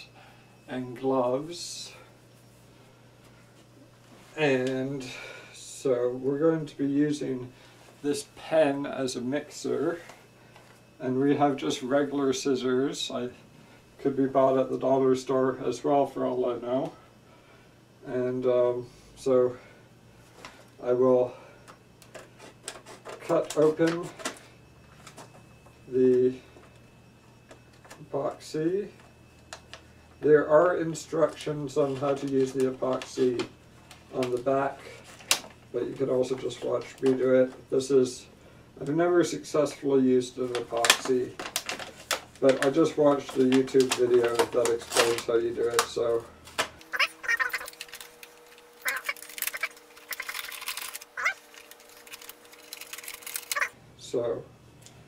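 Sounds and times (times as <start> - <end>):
faint steady hum: 0.0 - 55.0
plastic packaging crackling: 40.4 - 53.8.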